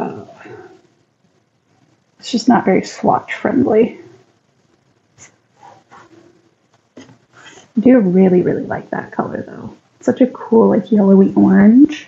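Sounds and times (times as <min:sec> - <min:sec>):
soft breath: 0:07.3 - 0:07.8.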